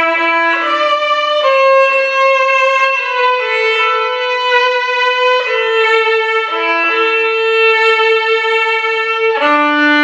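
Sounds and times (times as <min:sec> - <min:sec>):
violin slow melody: 0:00.0 - 0:10.0.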